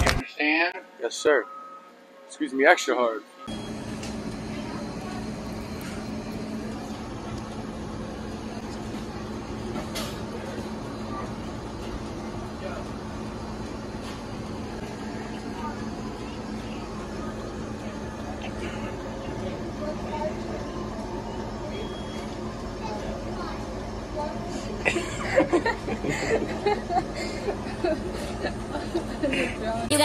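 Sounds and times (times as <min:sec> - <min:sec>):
indistinct background noise: 0:00.0 - 0:30.0
steady low hum: 0:03.4 - 0:30.0.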